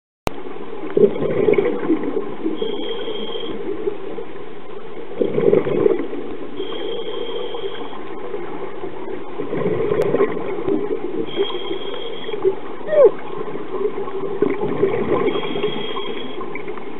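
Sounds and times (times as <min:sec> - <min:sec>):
steady underwater hiss: 0:00.4 - 0:16.9
bubbling exhaled air: 0:00.9 - 0:03.5, 0:05.2 - 0:07.8, 0:09.4 - 0:12.3, 0:14.3 - 0:16.4
thin high tone on inhalation: 0:02.6 - 0:03.6, 0:11.3 - 0:13.1, 0:15.4 - 0:16.4.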